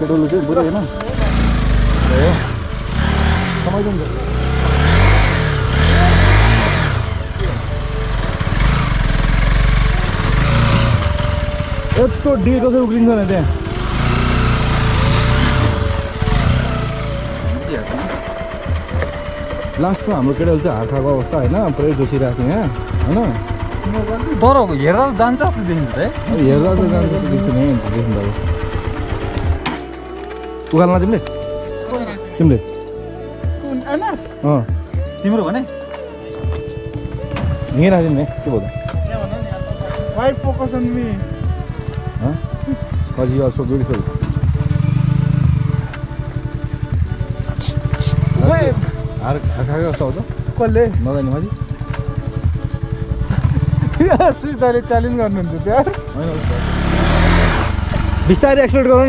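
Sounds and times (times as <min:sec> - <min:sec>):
motorcycle engine working hard: 0:00.0 - 0:33.8, 0:36.4 - 0:59.0
voices: 0:00.0 - 0:59.0.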